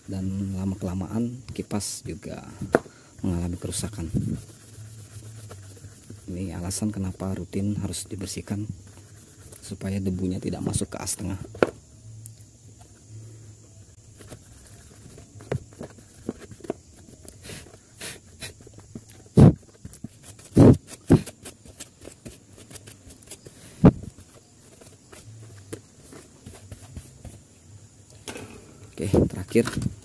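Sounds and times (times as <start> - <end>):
brush scrubbing plastic fan blades: 3.2 - 10.8, 14.1 - 27.4.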